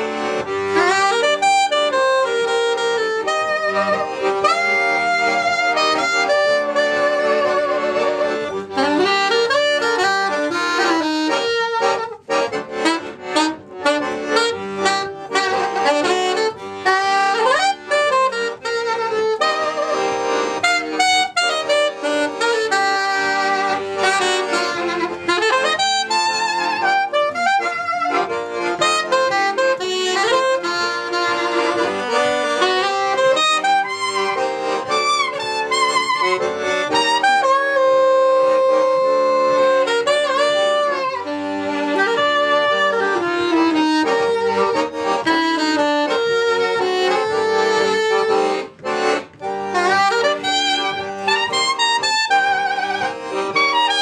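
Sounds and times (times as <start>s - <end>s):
piano accordion: 0.0s - 54.0s
soprano saxophone: 0.0s - 54.0s.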